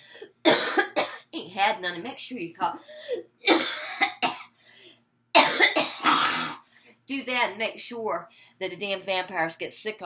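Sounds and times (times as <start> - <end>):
woman coughing: 0.4 - 1.3, 3.0 - 4.5, 5.4 - 6.6.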